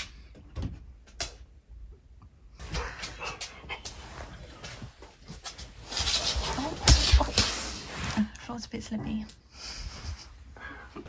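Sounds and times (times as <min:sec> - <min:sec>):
rustling and shuffling: 0:02.5 - 0:11.0.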